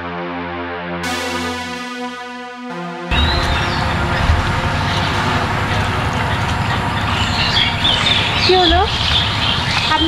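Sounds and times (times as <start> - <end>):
irregular low rumble: 3.1 - 10.0
steady rushing noise: 3.1 - 10.0.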